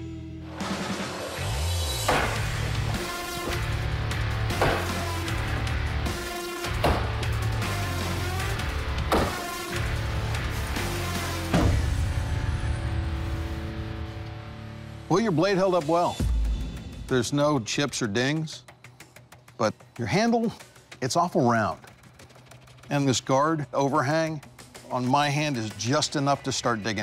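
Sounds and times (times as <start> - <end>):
background music: 0.0 - 27.0
knife chopping into metal barrier: 2.1 - 2.5, 4.5 - 5.1, 6.8 - 7.1, 9.1 - 9.5.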